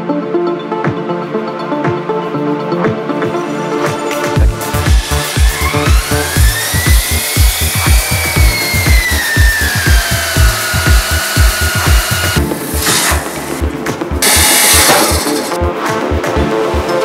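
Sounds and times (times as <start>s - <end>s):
electronic dance music: 1.8s - 17.0s
core drill cutting brick: 4.4s - 13.6s, 14.2s - 15.6s
loud rushing hiss: 14.2s - 15.5s.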